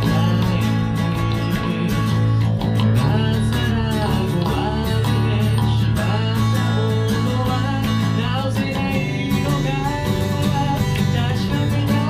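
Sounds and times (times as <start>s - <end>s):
electric bass line: 0.0s - 12.0s
man singing: 0.0s - 12.0s
strummed acoustic guitar: 0.0s - 12.0s.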